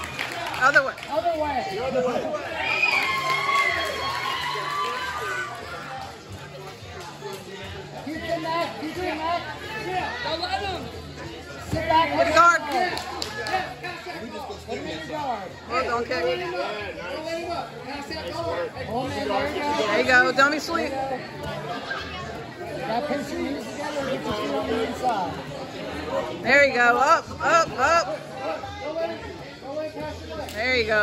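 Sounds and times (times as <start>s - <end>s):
indistinct chatter of voices: 0.0s - 31.0s.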